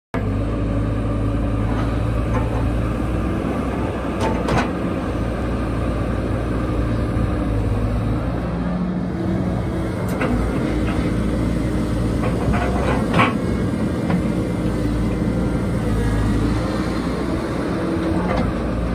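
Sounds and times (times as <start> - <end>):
excavator diesel engine running: 0.2 - 18.9.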